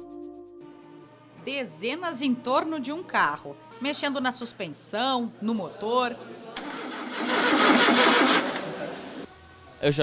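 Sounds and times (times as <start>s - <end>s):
car engine starting: 6.6s - 9.3s.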